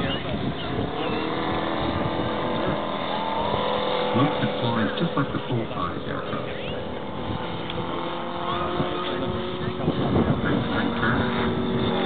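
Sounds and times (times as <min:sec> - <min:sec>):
model airplane engine droning: 0:00.0 - 0:12.0.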